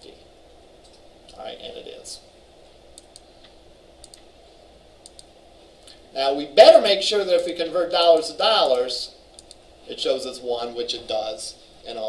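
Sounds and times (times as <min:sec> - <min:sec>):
computer mouse double clicks: 0:05.0 - 0:05.3, 0:09.4 - 0:09.6.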